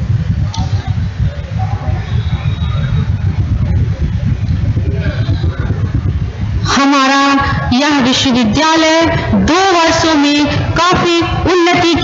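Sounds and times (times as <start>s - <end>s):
air buffeting microphone: 0.0s - 12.0s
faint murmuring voices: 0.1s - 6.7s.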